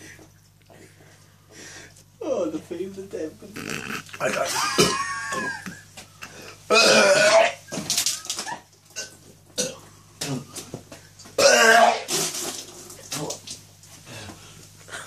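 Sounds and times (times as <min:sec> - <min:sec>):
man belching loudly: 0:03.5 - 0:05.6, 0:06.7 - 0:07.7, 0:11.4 - 0:12.1.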